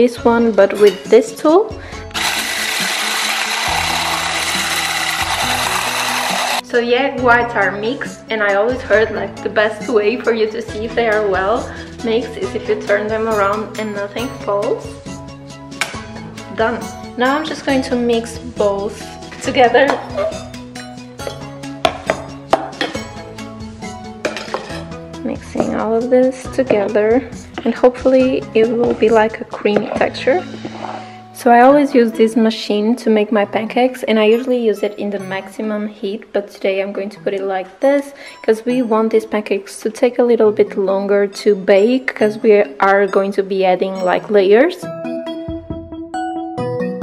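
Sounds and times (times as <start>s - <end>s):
background music with bass line: 1.8s - 31.3s, 44.8s - 47.0s
electric whisk beating in metal bowl: 2.1s - 6.6s.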